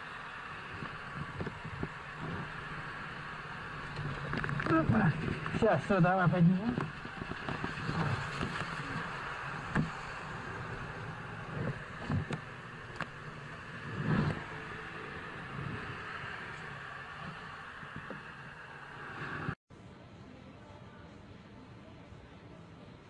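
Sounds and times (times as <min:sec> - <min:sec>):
street traffic noise: 0:00.0 - 0:23.0
knocks and bumps of motorcycle: 0:06.6 - 0:15.9.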